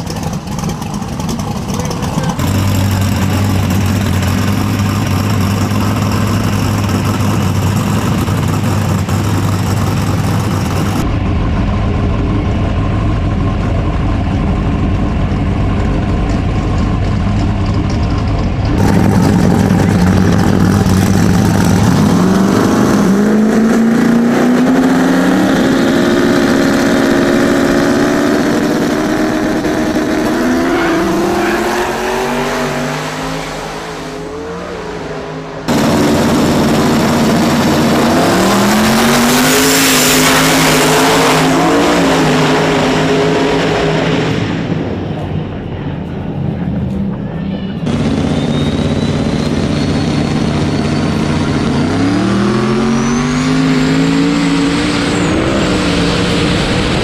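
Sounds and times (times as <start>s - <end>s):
cars accelerating hard: 0.0s - 45.5s, 47.8s - 57.0s
drag cars revving: 0.0s - 57.0s.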